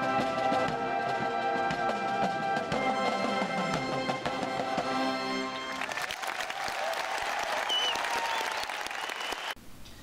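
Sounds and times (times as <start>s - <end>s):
crowd applause: 5.6s - 9.6s.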